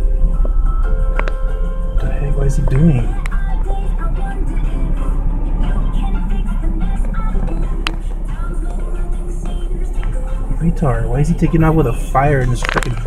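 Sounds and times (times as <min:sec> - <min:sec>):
music: 0:00.0 - 0:13.0
road traffic rumble: 0:00.0 - 0:13.0
muffled voices: 0:10.4 - 0:13.0.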